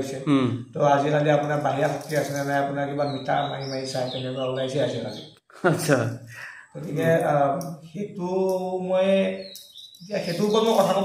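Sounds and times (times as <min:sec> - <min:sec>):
man chanting: 0:06.7 - 0:09.5.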